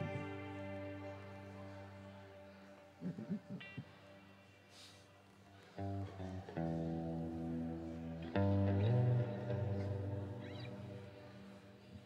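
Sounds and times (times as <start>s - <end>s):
band chord on guitars: 0.0s - 5.0s.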